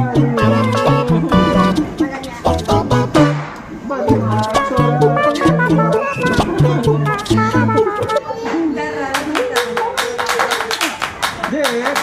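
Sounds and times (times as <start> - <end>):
person speaking: 0.0 - 3.3, 4.0 - 8.2
music: 0.0 - 8.2.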